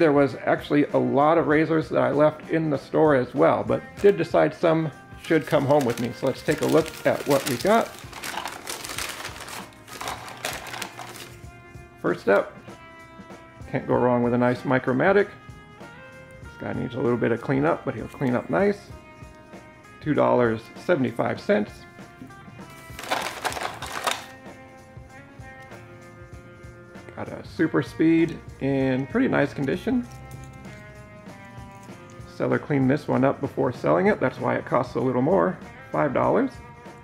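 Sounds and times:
soft background music: 0:00.0 - 0:37.0
paper bag rustling: 0:05.2 - 0:11.4, 0:22.8 - 0:24.3.

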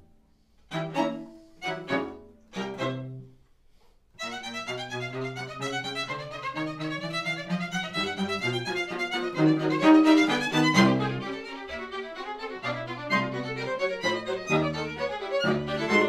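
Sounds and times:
string quartet playing: 0:00.0 - 0:03.4, 0:04.2 - 0:16.0
violin spiccato notes: 0:00.7 - 0:03.4, 0:04.2 - 0:16.0.

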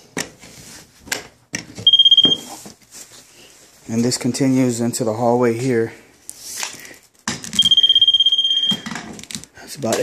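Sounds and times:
high fluttering meter beep: 0:01.9 - 0:02.5, 0:07.6 - 0:08.8.

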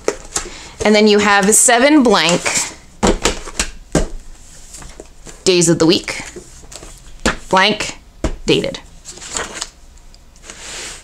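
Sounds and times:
paper rustling: 0:09.0 - 0:09.7.

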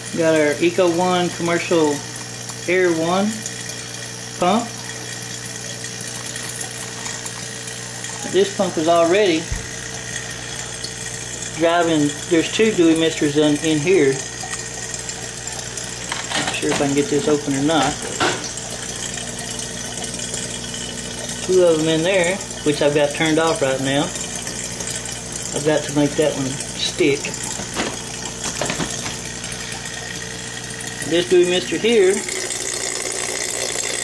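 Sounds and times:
air pump humming: 0:00.0 - 0:34.0.

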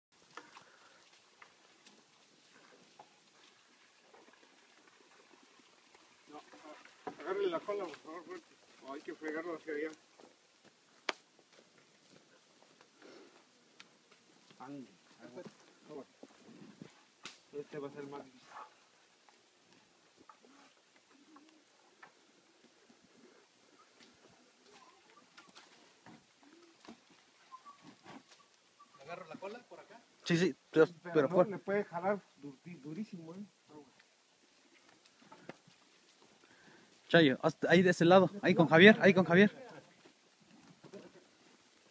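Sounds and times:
faint outdoor ambience: 0:00.1 - 0:41.9.

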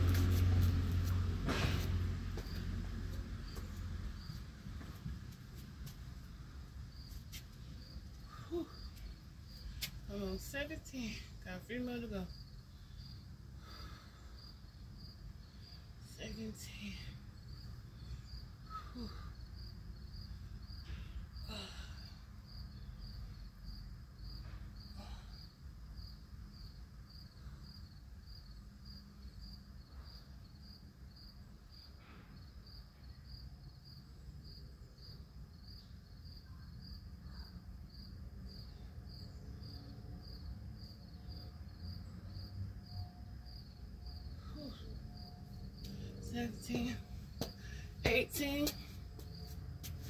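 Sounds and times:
low outdoor rumble: 0:00.0 - 0:26.6, 0:38.2 - 0:50.0
crickets chirping: 0:00.0 - 0:50.0.

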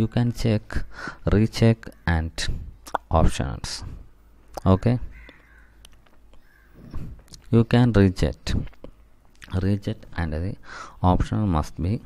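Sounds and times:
faint bird calling: 0:04.1 - 0:07.4.

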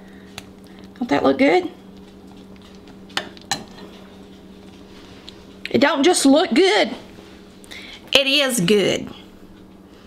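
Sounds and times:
steady low hum: 0:00.0 - 0:10.0
metal spoon clinking on dish: 0:03.5 - 0:03.9.

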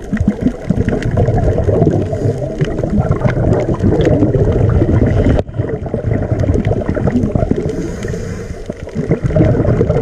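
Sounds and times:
underwater regulator bubbles gurgling: 0:00.0 - 0:10.0.

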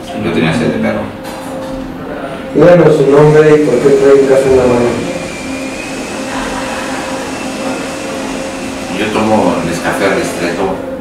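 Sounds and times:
machinery drone: 0:01.4 - 0:11.0.

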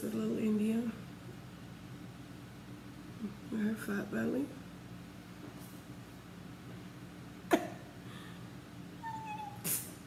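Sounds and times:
kitten mewing: 0:09.0 - 0:09.9.

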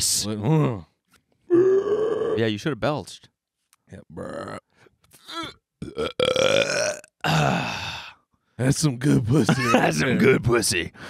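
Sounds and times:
man belching: 0:01.5 - 0:02.4, 0:04.2 - 0:08.1.

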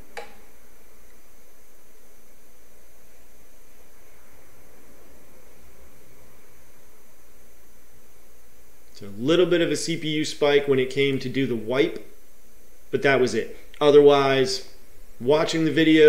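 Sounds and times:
room tone hiss: 0:00.0 - 0:16.0.

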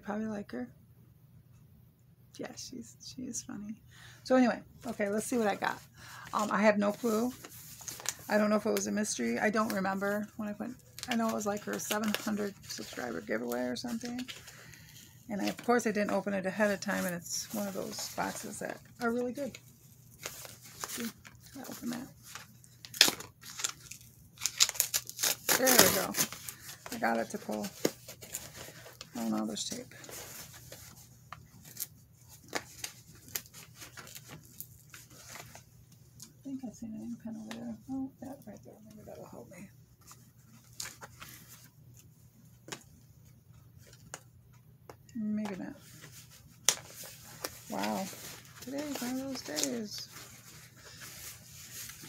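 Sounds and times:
packaging tearing and crinkling: 0:20.2 - 0:29.1.

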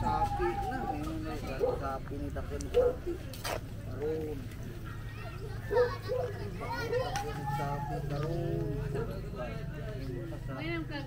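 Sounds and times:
people talking and calling out: 0:00.0 - 0:11.0
children's high-pitched voices: 0:04.8 - 0:08.6.

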